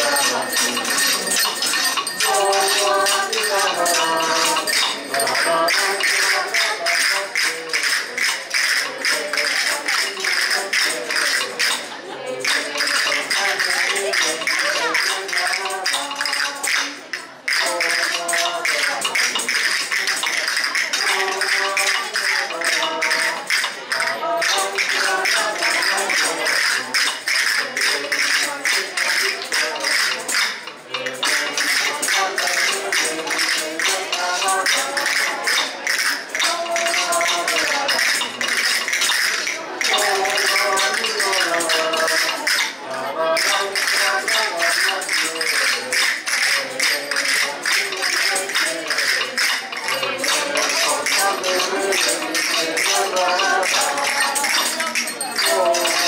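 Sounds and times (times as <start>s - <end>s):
group singing a carol: 0.0s - 56.0s
tambourines beating: 0.0s - 56.0s.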